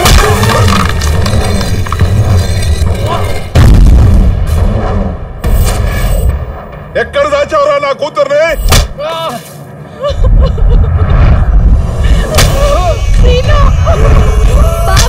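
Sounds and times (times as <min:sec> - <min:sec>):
heavy booming hit: 0:03.4 - 0:07.0.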